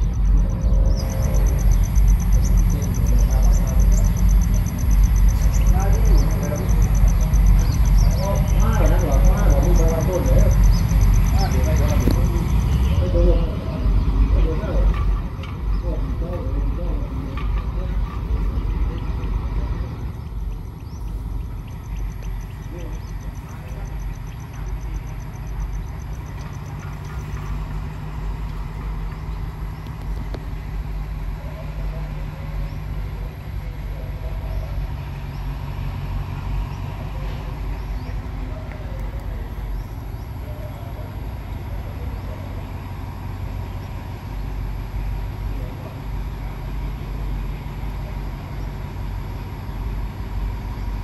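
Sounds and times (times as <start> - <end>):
diesel locomotive engine running: 0.0 - 51.0.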